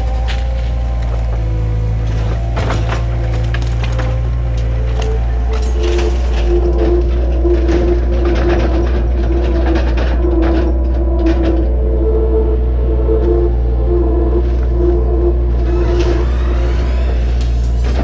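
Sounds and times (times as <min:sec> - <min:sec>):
wood cracking and splintering: 0:00.0 - 0:11.6
diesel engine running under load: 0:00.0 - 0:18.0
steady mechanical whine: 0:00.0 - 0:18.0.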